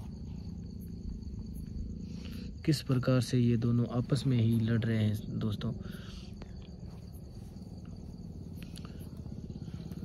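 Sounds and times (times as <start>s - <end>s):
crickets chirping: 0.0s - 10.0s
low background hum: 0.0s - 10.0s.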